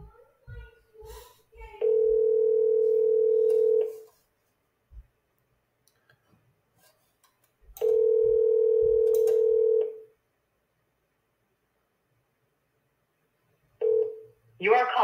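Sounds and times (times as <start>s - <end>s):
phone ringback tone: 1.8s - 4.0s, 7.8s - 10.1s, 13.8s - 14.3s.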